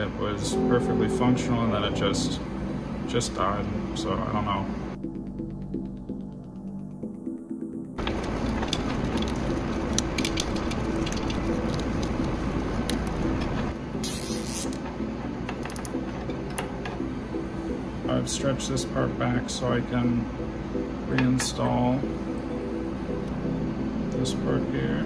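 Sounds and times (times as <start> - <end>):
steady hum or soft music: 0.0 - 25.0
fingers handling wires and connectors: 8.0 - 13.7.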